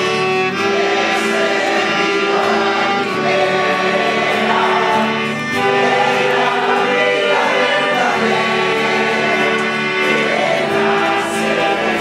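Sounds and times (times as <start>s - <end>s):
group singing a hymn: 0.0s - 12.0s.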